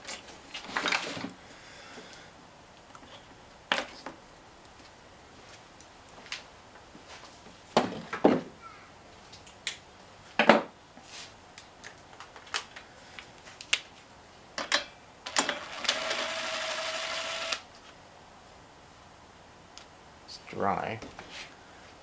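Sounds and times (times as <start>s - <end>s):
cordless drill motor running: 15.3s - 17.6s.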